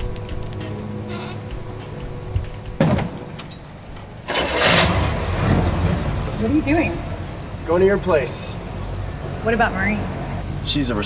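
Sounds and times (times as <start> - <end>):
car engine starting and running: 0.0 - 11.0.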